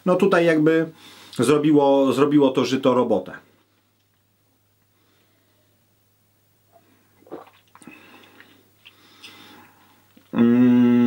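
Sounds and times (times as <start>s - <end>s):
man sipping and swallowing: 6.7s - 10.5s.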